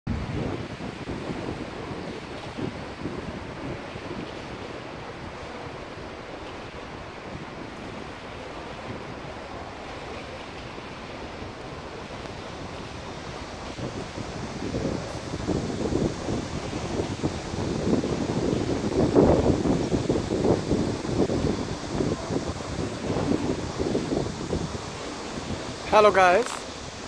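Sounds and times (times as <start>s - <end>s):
river water rushing: 0.1s - 27.0s
wind blowing across microphone: 0.1s - 27.0s.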